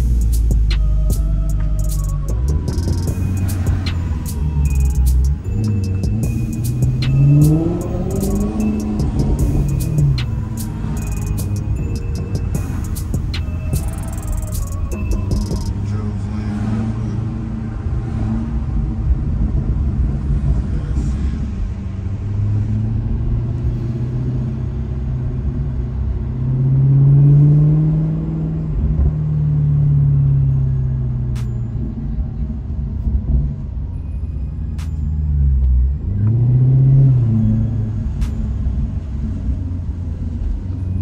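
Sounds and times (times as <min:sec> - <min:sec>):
car engine from inside cabin: 0:00.0 - 0:41.0.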